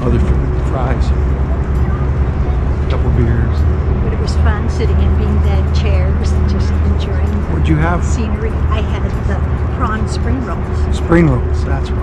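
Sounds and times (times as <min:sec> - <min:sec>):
city traffic: 0:00.0 - 0:12.0
faint voices of passers-by: 0:00.0 - 0:12.0.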